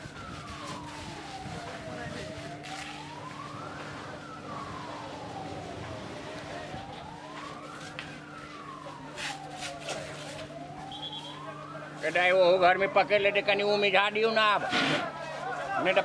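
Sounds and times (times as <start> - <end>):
emergency siren wailing: 0.0 - 16.0.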